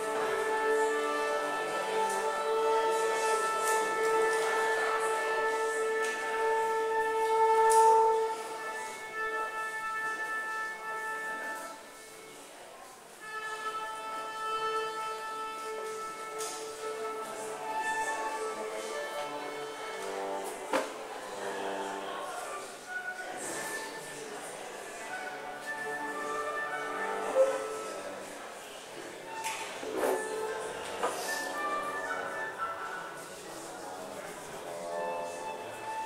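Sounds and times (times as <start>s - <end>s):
acoustic ensemble with violin: 0.0s - 36.0s.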